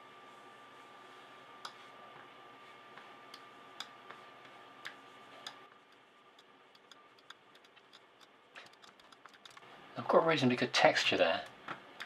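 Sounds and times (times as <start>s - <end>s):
computer mouse clicks: 3.3s - 4.0s, 4.8s - 9.6s.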